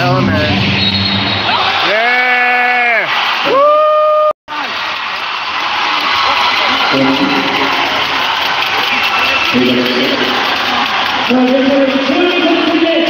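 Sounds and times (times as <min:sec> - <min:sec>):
arena crowd noise: 0:00.0 - 0:13.0.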